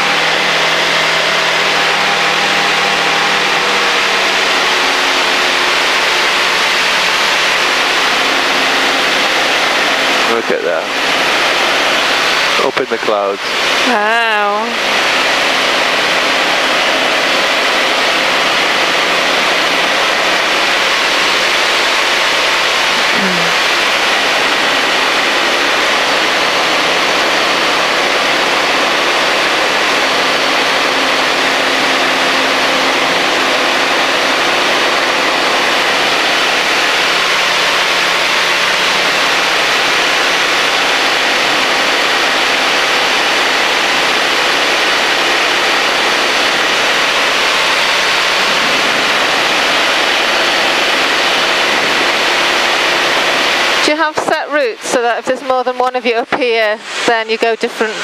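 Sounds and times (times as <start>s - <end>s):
aircraft engine and propeller drone: 0.0s - 58.0s
rushing airflow: 31.1s - 55.4s, 56.1s - 58.0s.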